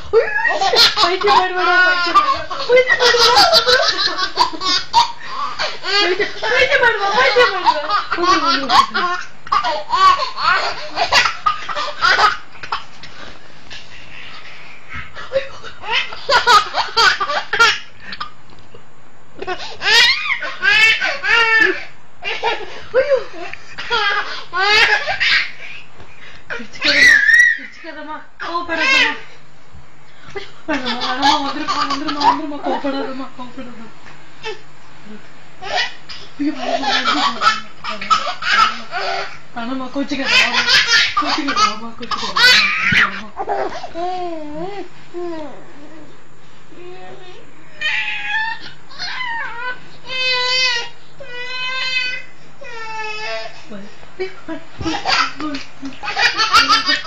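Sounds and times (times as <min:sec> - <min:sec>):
toddler laughing: 0:00.2 - 0:12.9, 0:19.4 - 0:25.8, 0:30.7 - 0:32.8, 0:36.6 - 0:39.4, 0:40.2 - 0:45.6, 0:54.8 - 0:57.0.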